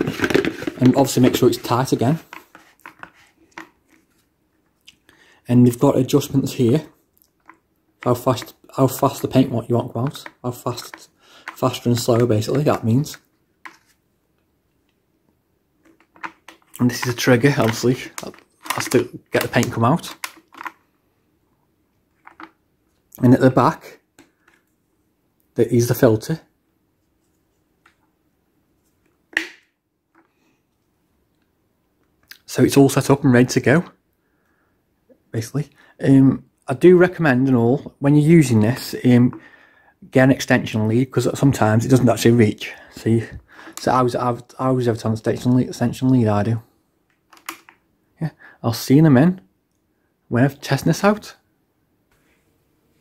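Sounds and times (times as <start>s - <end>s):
hard plastic parts clicking: 0.0s - 1.4s, 15.8s - 20.8s, 22.2s - 22.6s, 47.1s - 47.8s.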